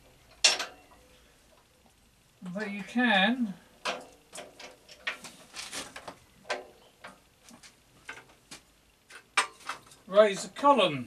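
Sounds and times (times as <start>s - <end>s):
metallic clicks and clunks: 0.3s - 1.0s, 3.8s - 5.3s.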